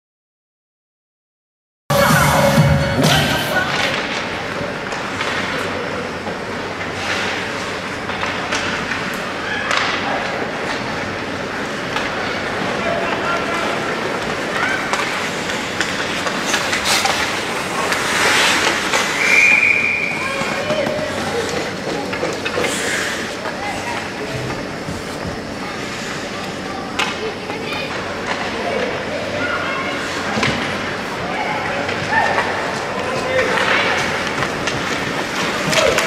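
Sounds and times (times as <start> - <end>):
indistinct shouting and chatter: 1.9 - 36.0
skates on ice: 3.6 - 36.0.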